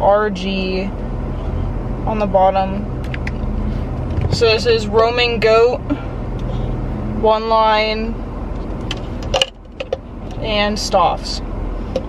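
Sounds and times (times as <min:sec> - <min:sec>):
low hum in car cabin: 0:00.0 - 0:12.0.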